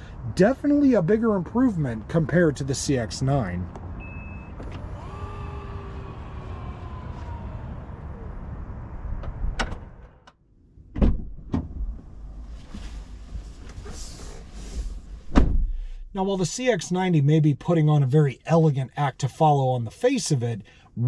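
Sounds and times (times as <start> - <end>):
tailgate motor whine: 4.0 - 10.2.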